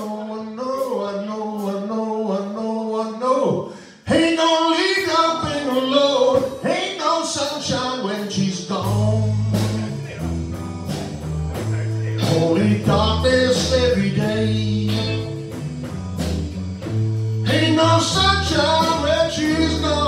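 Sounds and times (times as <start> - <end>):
electric bass long low notes: 4.1 - 20.0
electric guitars: 5.3 - 20.0
drum hits: 7.6 - 20.0.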